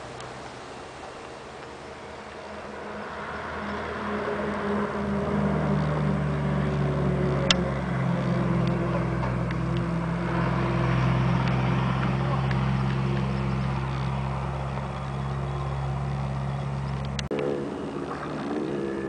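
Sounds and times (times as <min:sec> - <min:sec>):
engine humming steadily: 0:00.0 - 0:19.0.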